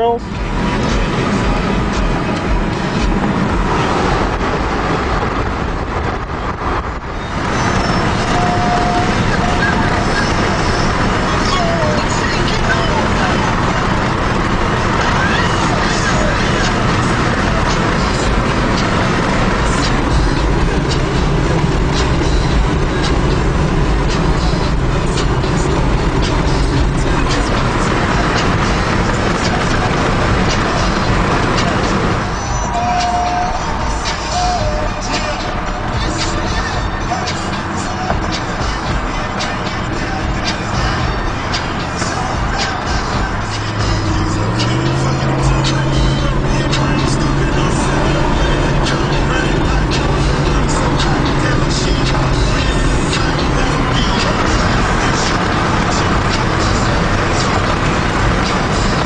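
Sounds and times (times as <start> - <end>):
music playing: 0.0 - 59.0
road and wind noise in car: 0.0 - 59.0.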